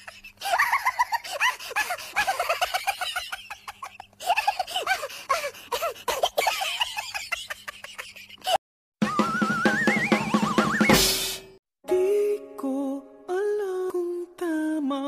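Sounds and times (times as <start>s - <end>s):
high-pitched giggling laughter: 0.0s - 8.6s.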